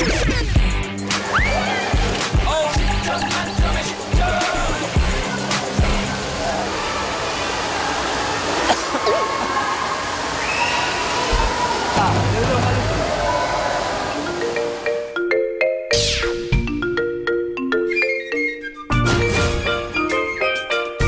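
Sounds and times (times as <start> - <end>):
background music: 0.0 - 7.0, 12.0 - 21.0
water splashing and sloshing: 1.0 - 15.0.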